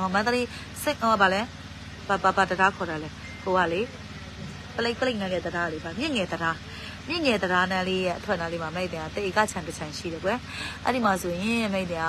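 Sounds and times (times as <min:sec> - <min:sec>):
woman talking: 0:00.0 - 0:01.5, 0:02.1 - 0:03.9, 0:04.7 - 0:12.0
steady low hum: 0:00.0 - 0:12.0.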